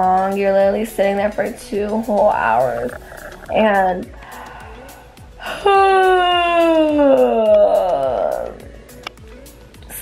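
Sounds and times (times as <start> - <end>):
woman moaning: 2.5 - 8.6.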